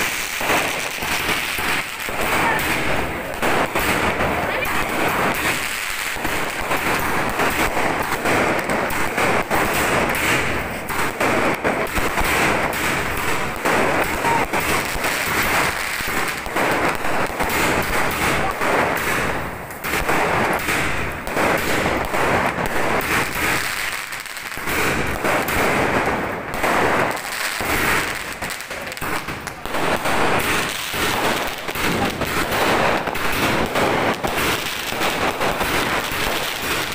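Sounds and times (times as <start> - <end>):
fireworks crackling and banging: 0.0 - 36.9.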